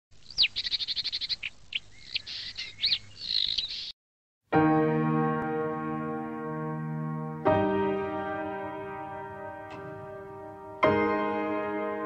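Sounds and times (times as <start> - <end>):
bird song: 0.2 - 4.0.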